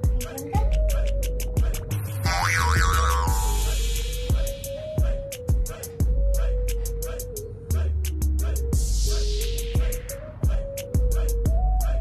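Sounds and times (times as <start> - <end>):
background music with a beat: 0.0 - 12.0
comic swooping sound effect: 2.3 - 3.8.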